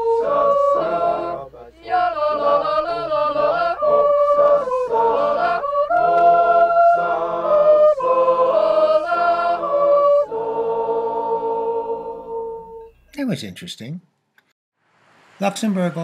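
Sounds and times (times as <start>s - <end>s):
mixed choir singing a cappella: 0.0s - 12.9s.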